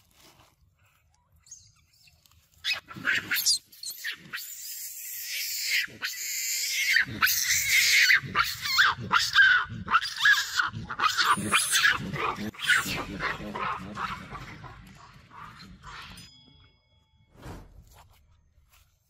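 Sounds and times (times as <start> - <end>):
macaques screaming: 2.6 - 15.6.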